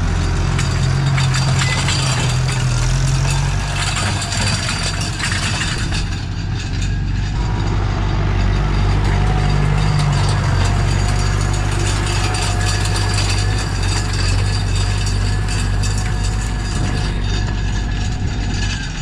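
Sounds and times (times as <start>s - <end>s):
tractor diesel engine running: 0.0s - 19.0s.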